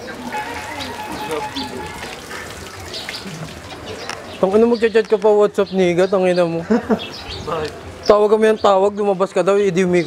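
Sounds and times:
street background murmur: 0.0s - 10.0s.

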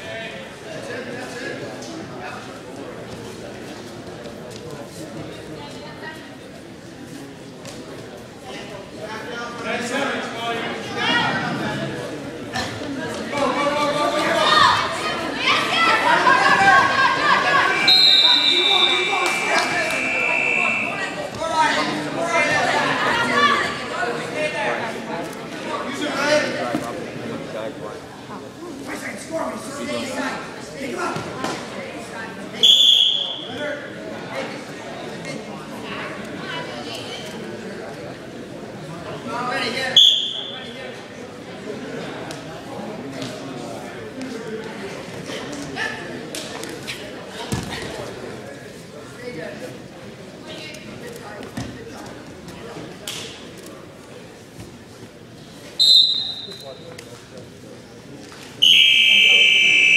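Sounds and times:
crowd voices chattering: 0.0s - 59.9s
referee's whistle blast: 17.6s - 21.2s, 32.6s - 33.6s, 55.8s - 56.6s, 58.6s - 59.9s.

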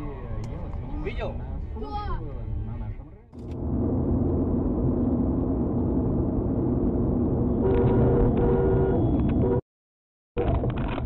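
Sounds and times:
car road and engine noise: 0.0s - 9.6s.

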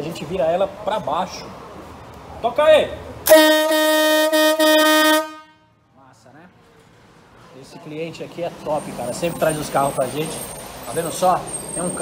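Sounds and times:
marine horn long blast: 3.3s - 5.6s.

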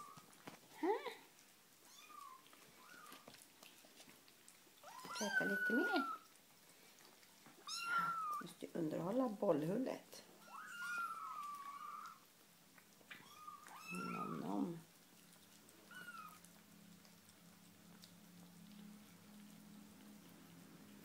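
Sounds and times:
faint low steady hum: 0.0s - 21.0s
kittens mewing: 7.6s - 8.5s, 10.4s - 12.2s, 13.1s - 16.5s.

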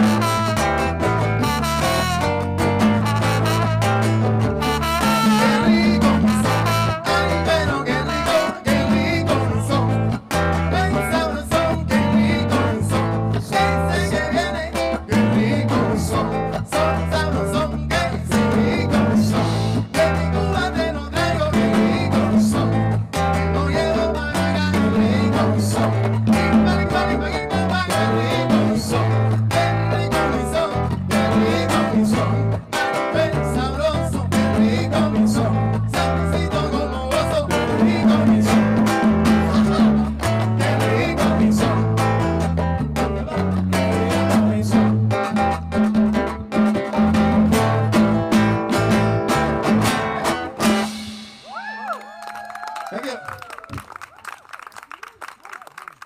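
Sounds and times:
trumpet: 0.0s - 8.7s
live band playing: 0.0s - 52.0s
hand percussion: 0.0s - 52.5s.

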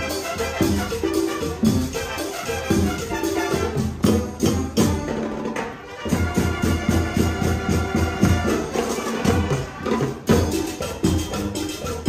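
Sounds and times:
sustained brass notes: 0.0s - 5.0s, 5.7s - 10.5s
drums and percussion beating: 0.0s - 12.0s
marching band playing latin music: 0.0s - 12.0s.

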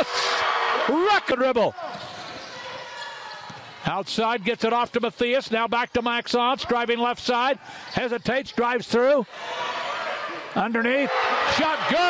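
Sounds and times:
crowd and gym noise: 0.0s - 12.0s.

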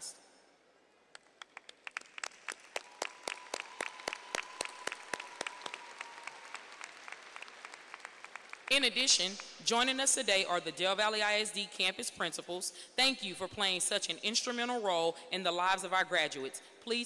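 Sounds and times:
audience applause: 1.4s - 8.7s.

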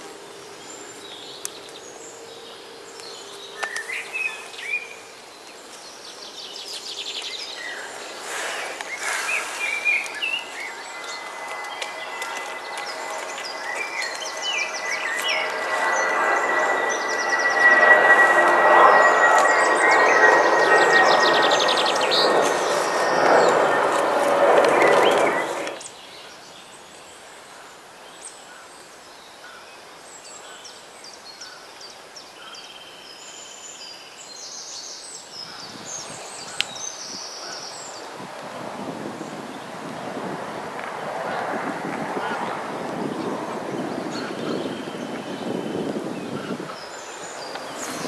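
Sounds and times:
birds chirping and trilling: 0.3s - 38.1s, 42.2s - 48.0s
steady high tone: 9.4s - 25.8s.

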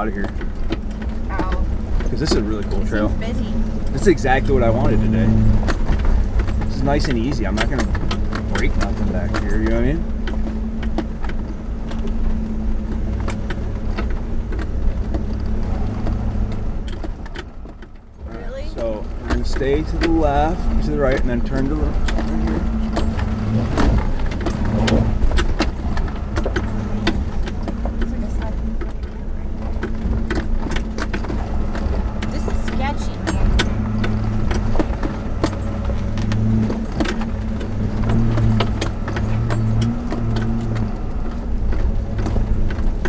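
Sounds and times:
clicks and rattles: 0.0s - 43.0s
engine running at low revs: 0.0s - 43.0s.

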